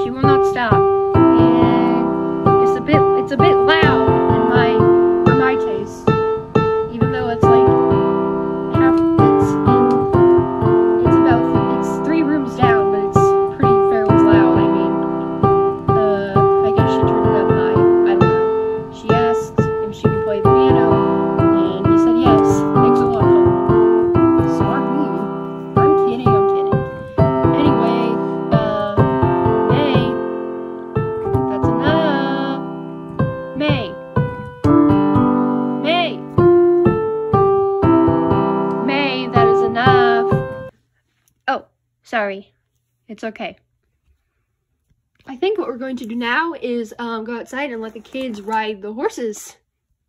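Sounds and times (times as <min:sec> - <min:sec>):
piano music: 0:00.0 - 0:40.7.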